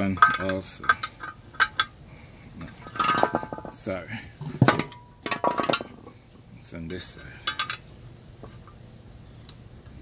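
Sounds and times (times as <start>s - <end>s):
metal brake shoes clanking: 0.0s - 2.0s, 2.6s - 6.2s.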